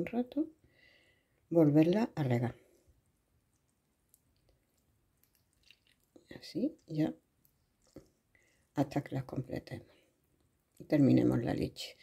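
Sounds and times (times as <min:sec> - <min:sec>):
milk pouring onto bread: 0:03.4 - 0:08.8.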